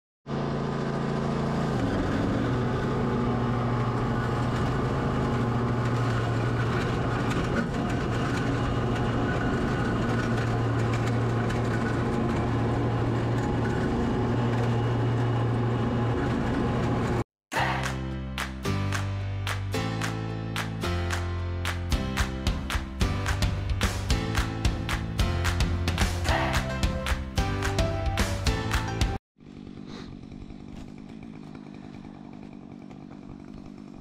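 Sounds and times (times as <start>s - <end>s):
mower engine running: 0.3s - 17.2s, 22.2s - 34.0s
strummed guitar tune: 18.4s - 29.2s.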